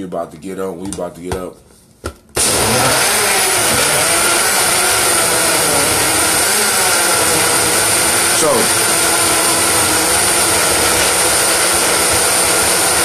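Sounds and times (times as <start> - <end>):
electric blender running: 2.4 - 13.0.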